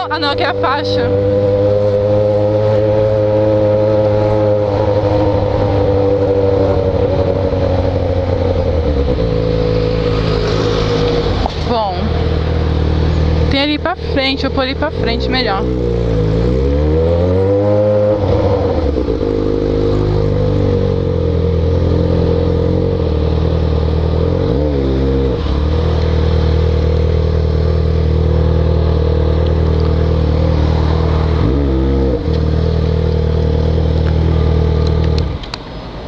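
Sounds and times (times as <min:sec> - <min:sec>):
motorcycle engine revving: 0:00.0 - 0:35.6.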